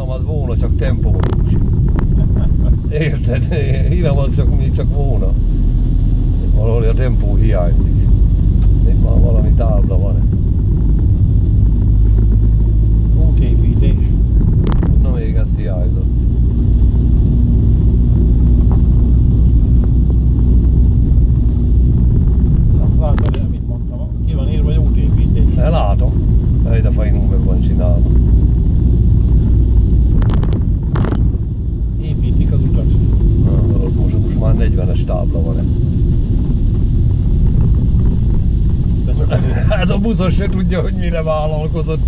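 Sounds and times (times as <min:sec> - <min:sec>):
car engine and tyres rumbling: 0:00.0 - 0:42.0.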